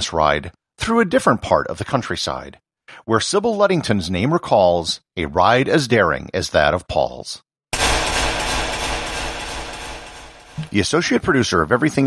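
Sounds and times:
crash-like transition hit: 7.8 - 10.9.

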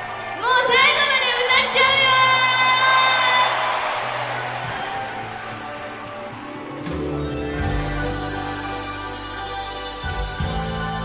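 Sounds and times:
crowd cheering and whooping: 0.0 - 8.9
quiet backing music: 5.3 - 11.0.

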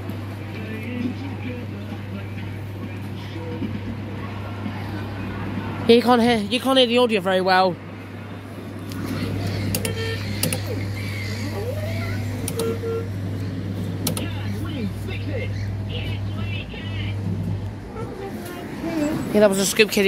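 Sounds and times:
low motor hum: 7.8 - 20.0
faint voices: 9.0 - 20.0.

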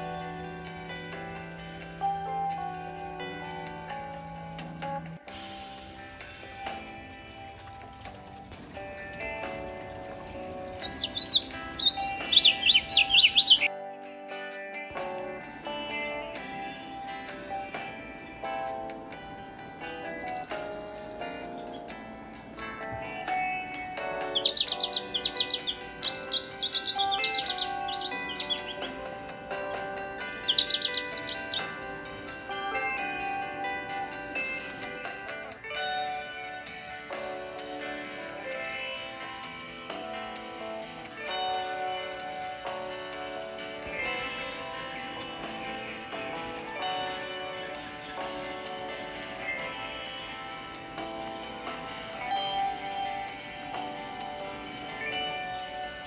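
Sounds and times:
songbird chirping: 0.0 - 13.7, 15.0 - 37.4, 41.0 - 56.0
guitar music: 0.0 - 56.0.

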